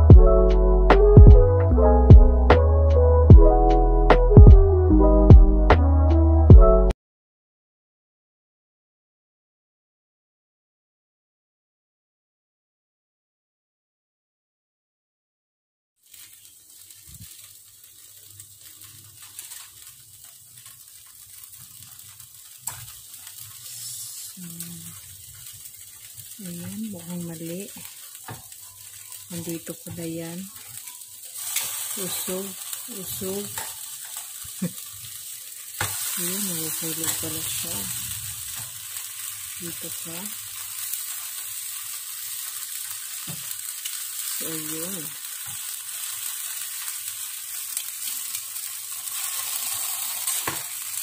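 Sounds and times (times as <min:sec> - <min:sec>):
meat sizzling on a grill: 0:16.0 - 0:51.0.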